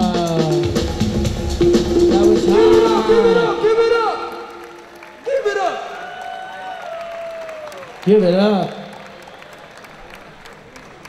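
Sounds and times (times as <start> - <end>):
audience clapping: 3.6 - 11.0.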